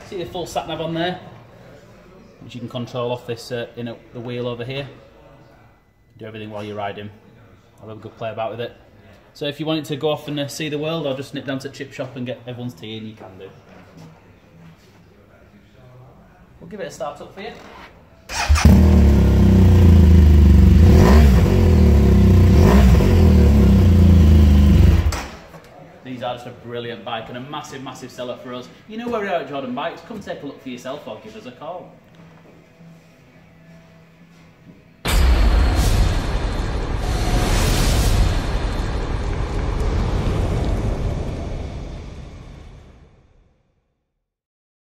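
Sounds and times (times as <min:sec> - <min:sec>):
motorcycle engine idling and revving: 0:18.3 - 0:25.3
deep explosion boom: 0:35.1 - 0:43.3
whoosh: 0:35.1 - 0:43.6
heavy fire rumble: 0:35.8 - 0:43.2.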